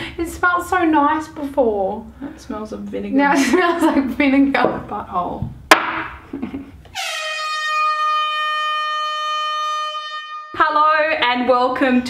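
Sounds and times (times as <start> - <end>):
people laughing: 3.3 - 4.2
buzzy horn-like tone: 6.9 - 11.1.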